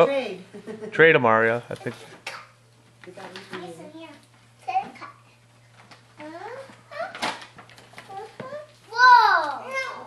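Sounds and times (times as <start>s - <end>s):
small children babbling: 8.1s - 10.0s.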